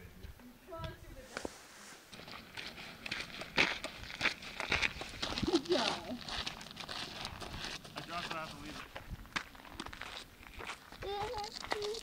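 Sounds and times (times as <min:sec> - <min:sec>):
footsteps on sandy gravel: 0:01.2 - 0:12.0.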